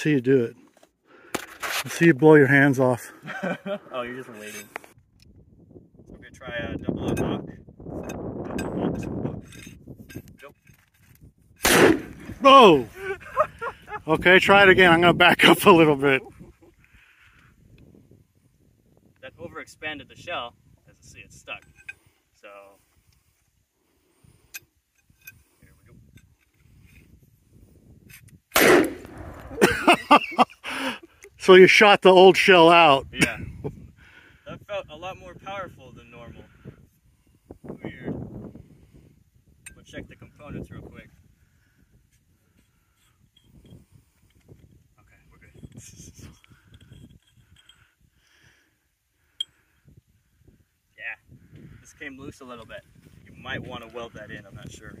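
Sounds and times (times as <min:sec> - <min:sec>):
metal parts rustling and scraping: 0:04.4 - 0:05.0, 0:09.4 - 0:11.3, 0:45.6 - 0:47.9.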